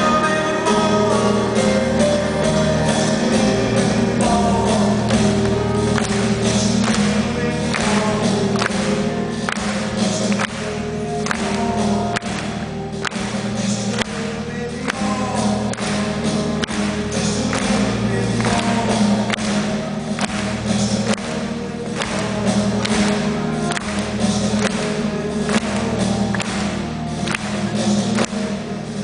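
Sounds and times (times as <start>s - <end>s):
live soft-rock band echoing: 0.0s - 29.0s.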